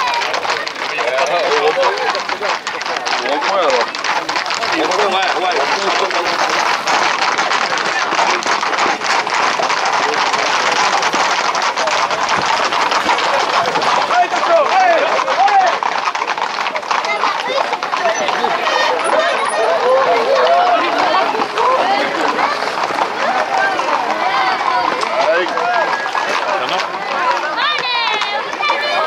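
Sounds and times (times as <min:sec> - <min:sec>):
crowd shouting and calling: 0:00.0 - 0:29.0
hooves clattering on asphalt: 0:00.0 - 0:29.0
running feet on asphalt: 0:00.0 - 0:29.0.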